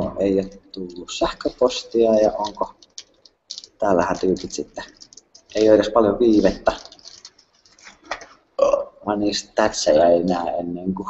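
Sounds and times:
faint clicks: 0.5 - 8.3.

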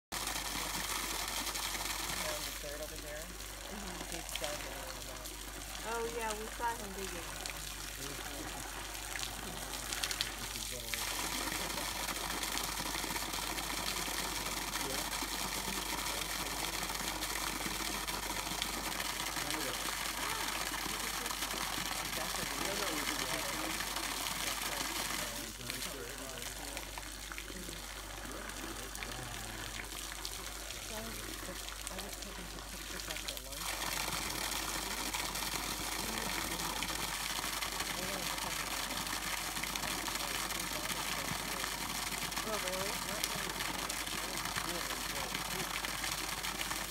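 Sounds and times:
hose water splashing into puddle: 0.1 - 46.9
faint voices: 19.2 - 34.0.

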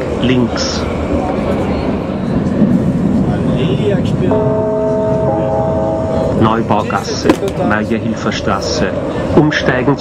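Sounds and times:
train carriage low rumble: 0.0 - 10.0
chime of held tones: 4.3 - 6.6.

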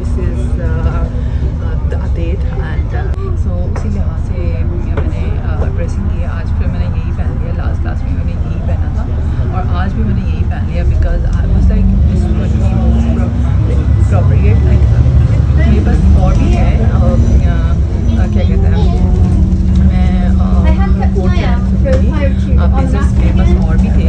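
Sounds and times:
bus engine droning: 0.0 - 24.0
voices talking: 0.0 - 24.0.

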